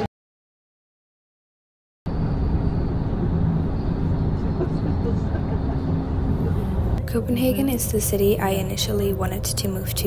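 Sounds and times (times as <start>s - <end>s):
bus rumbling in motion: 2.1s - 10.0s.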